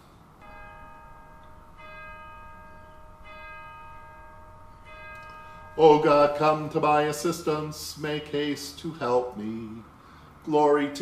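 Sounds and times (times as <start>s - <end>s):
bell ringing: 0.4s - 7.7s.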